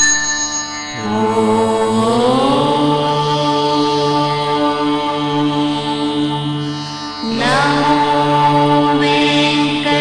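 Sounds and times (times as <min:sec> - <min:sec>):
devotional mantra chanting: 0:00.9 - 0:10.0.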